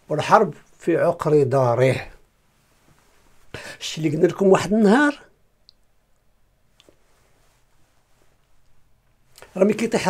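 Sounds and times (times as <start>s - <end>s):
man speaking: 0.0s - 2.2s, 3.6s - 5.3s, 9.4s - 10.0s
faint small clicks: 5.6s - 7.0s.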